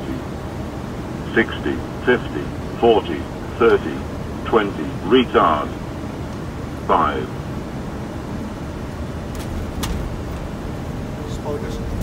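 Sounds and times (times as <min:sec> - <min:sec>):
airflow and engine rumble: 0:00.0 - 0:12.0.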